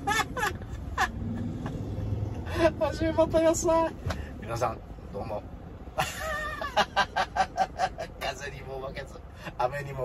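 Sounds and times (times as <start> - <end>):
man laughing heartily: 0.0 - 2.6, 5.9 - 8.2.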